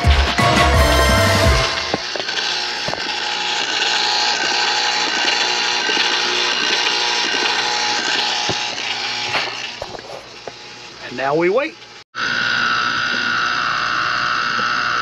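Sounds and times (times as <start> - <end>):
ice cream maker motor whirring: 1.3 - 15.0.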